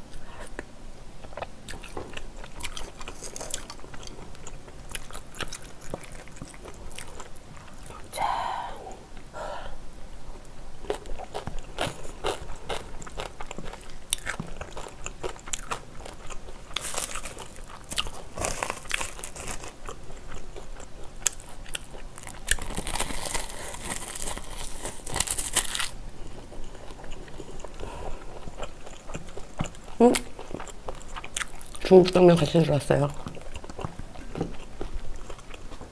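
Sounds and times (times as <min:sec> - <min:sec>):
close chewing and biting: 0:01.2 - 0:08.1, 0:10.8 - 0:35.9
crisp seaweed crackling: 0:22.2 - 0:26.0.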